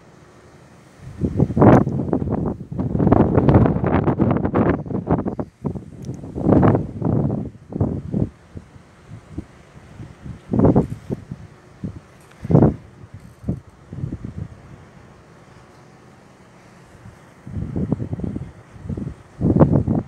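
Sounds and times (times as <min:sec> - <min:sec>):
wind buffeting microphone: 0:01.0 - 0:15.0, 0:16.9 - 0:20.0.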